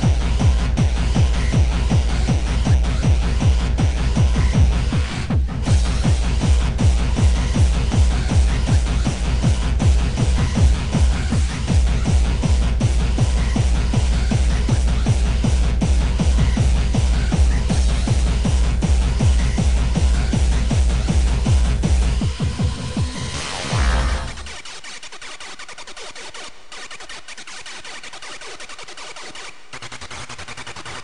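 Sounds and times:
heavy kick drum: 0.0s - 24.5s
fast electronic dance music: 0.0s - 31.0s.

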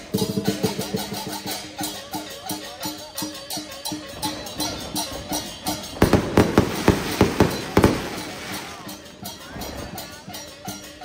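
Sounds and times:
steady beat: 5.7s - 9.4s
loud sharp bangs: 6.0s - 8.8s
hissing wash: 6.1s - 8.9s.

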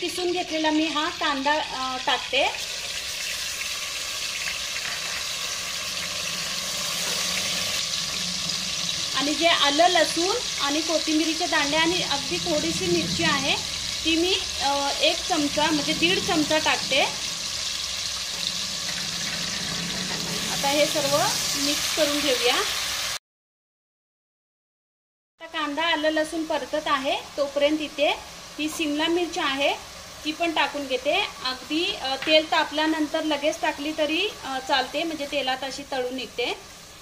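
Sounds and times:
onion sizzling in hot oil: 0.0s - 23.2s, 25.4s - 37.0s.

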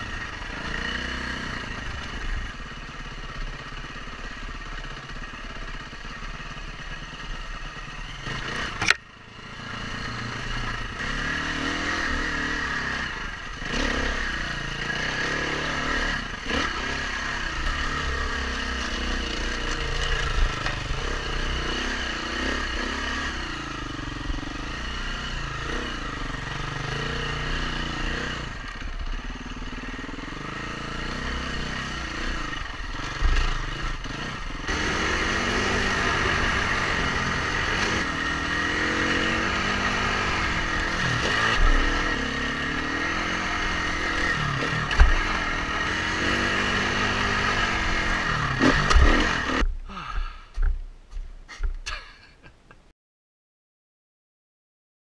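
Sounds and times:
dirt bike engine revving: 0.0s - 50.1s
sharp click: 8.8s - 9.0s.

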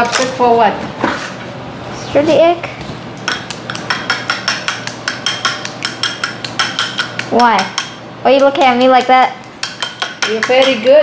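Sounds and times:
chopsticks beating egg in glass bowl: 3.2s - 11.0s.

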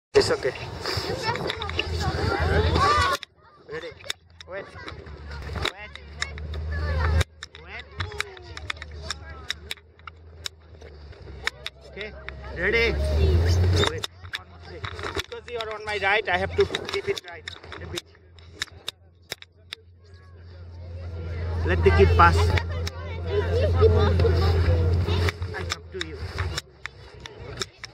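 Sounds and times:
man talking: 0.2s - 0.7s, 21.6s - 22.6s
low rumble: 19.9s - 27.1s.

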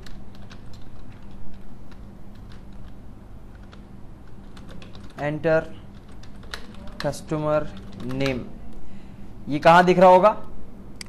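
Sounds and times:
computer keyboard typing: 0.0s - 8.5s.

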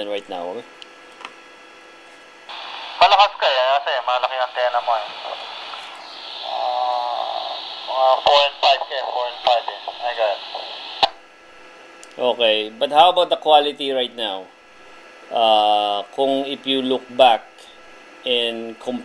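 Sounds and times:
person speaking over radio speaker: 2.5s - 11.2s
radio static hiss: 2.5s - 14.4s.

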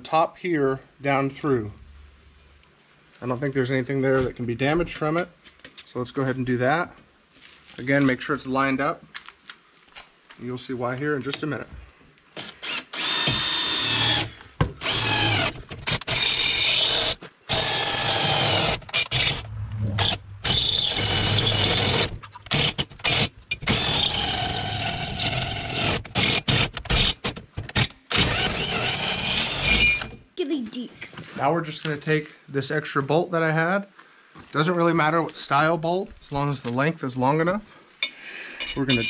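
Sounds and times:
power drill whining through metal: 12.4s - 30.2s.

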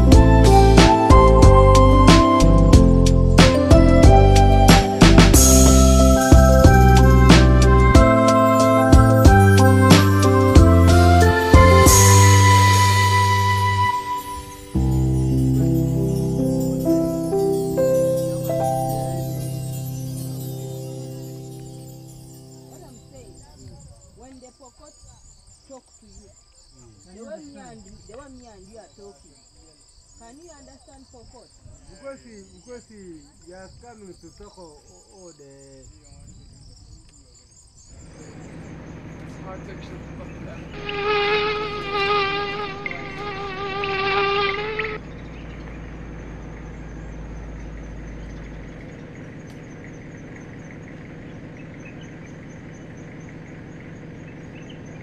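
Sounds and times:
insect buzzing close by: 40.7s - 45.1s
insects shrilling: 40.7s - 55.0s.

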